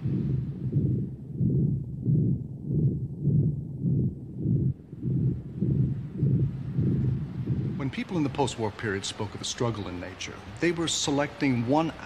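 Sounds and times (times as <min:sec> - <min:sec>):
deep throbbing bass note: 0:00.0 - 0:07.9.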